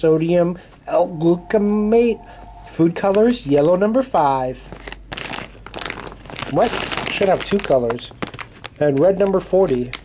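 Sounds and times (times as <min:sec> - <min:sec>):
plastic chip bag crinkling: 0:04.8 - 0:10.0.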